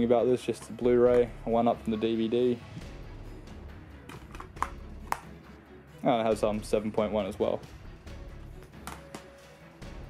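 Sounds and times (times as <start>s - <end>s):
plastic case clicks: 4.1s - 5.3s, 8.8s - 9.3s.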